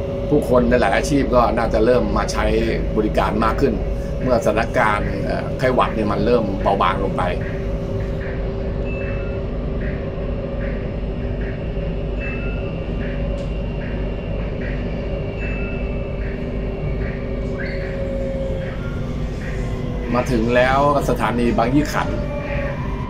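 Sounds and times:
metro train rumble: 0.0s - 23.0s
train drive humming: 0.0s - 23.0s.

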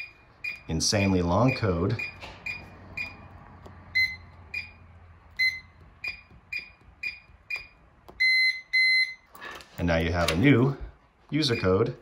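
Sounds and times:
keypad lock beeping: 0.0s - 3.3s, 3.9s - 9.3s.

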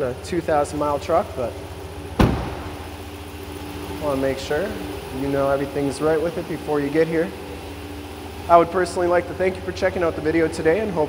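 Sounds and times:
truck engine idling: 0.0s - 11.0s
truck door shutting: 2.1s - 3.1s.

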